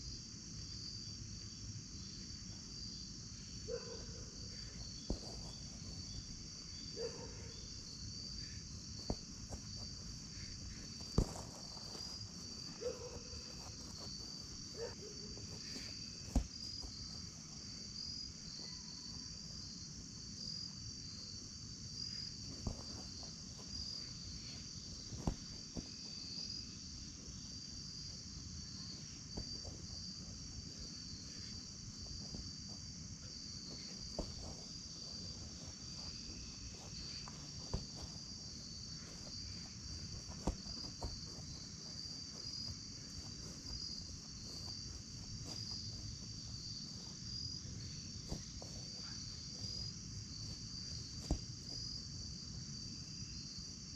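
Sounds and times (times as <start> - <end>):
crickets trilling: 0.0 - 53.9
soccer ball being kicked: 5.0 - 6.0, 9.0 - 17.3, 22.5 - 23.9, 25.0 - 26.2, 33.6 - 38.4, 39.0 - 47.1, 48.2 - 49.8, 50.5 - 51.9.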